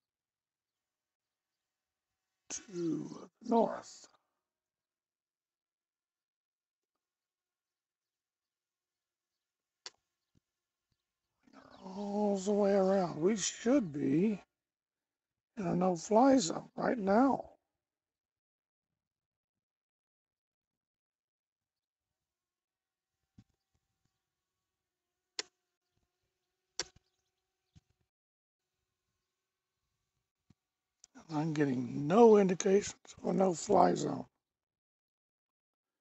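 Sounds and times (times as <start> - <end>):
man's voice: 2.5 - 4.0, 11.9 - 14.4, 15.6 - 17.4, 31.2 - 34.2.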